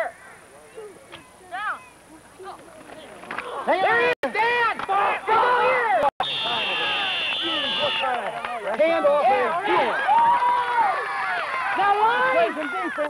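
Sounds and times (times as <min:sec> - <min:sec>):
spectators yelling and cheering: 0:03.6 - 0:13.0
referee whistle blast: 0:06.2 - 0:08.2.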